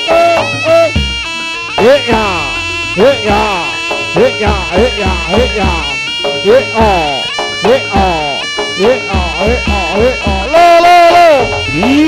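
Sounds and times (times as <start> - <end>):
buzzy reed trumpet: 0.0 - 12.0.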